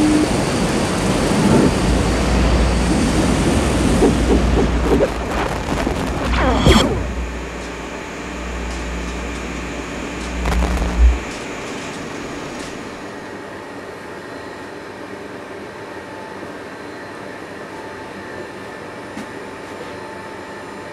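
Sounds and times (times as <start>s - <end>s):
electronic laser hum: 0.0s - 13.2s.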